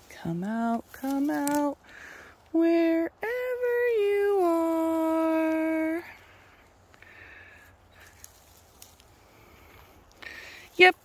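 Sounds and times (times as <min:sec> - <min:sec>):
rustling of conifer needles: 0:00.0 - 0:11.0.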